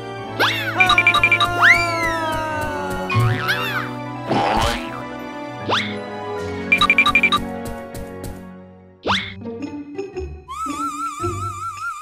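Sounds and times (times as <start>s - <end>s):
background music: 0.0s - 12.0s
cartoon character high-pitched cry: 0.5s - 2.9s.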